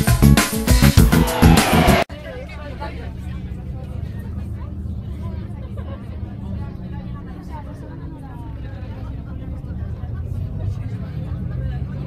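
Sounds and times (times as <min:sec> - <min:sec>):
vehicle engine hum: 0:01.0 - 0:12.0.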